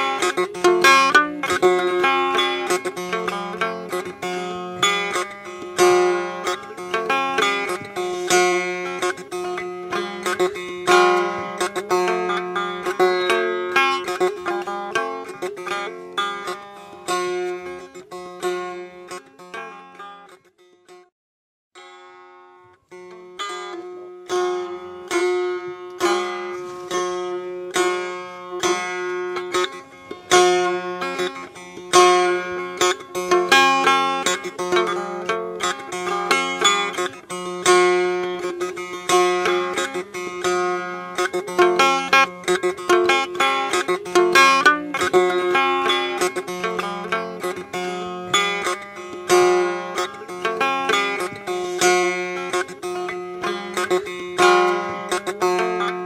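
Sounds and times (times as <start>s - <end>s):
plucked lute notes: 0.0s - 21.1s, 21.8s - 56.0s.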